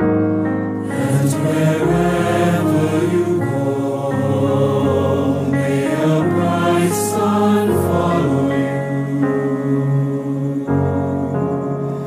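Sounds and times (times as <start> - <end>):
piano playing slow chords: 0.0 - 12.0
choir singing hymn-like song: 0.8 - 12.0.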